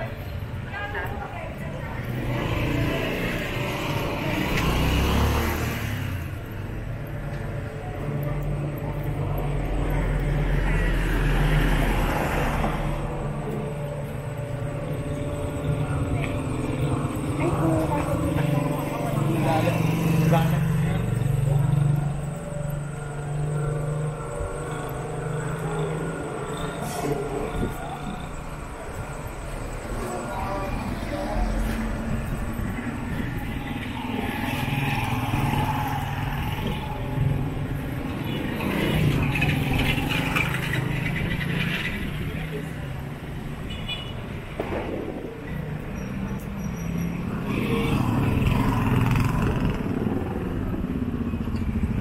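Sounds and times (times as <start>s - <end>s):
people talking: 0.0s - 3.4s, 15.6s - 22.3s, 24.6s - 32.6s
vehicles passing: 0.0s - 52.0s.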